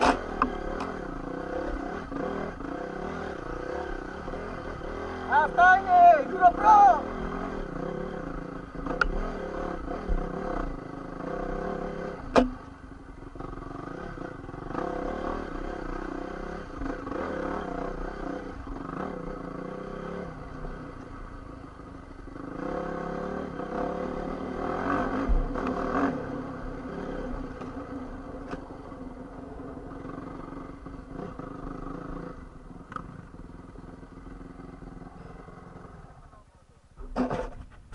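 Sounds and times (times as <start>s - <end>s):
dirt bike engine running: 0.0s - 36.4s.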